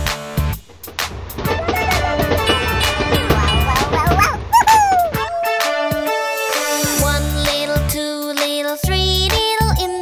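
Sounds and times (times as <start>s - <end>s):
children's background music: 1.4s - 10.0s
cartoon whimper sliding down: 4.2s - 6.2s.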